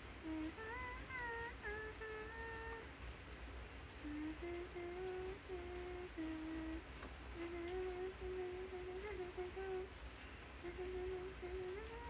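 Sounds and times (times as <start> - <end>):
woman humming: 0.0 - 2.9, 4.0 - 6.8, 7.4 - 9.9, 10.6 - 12.0.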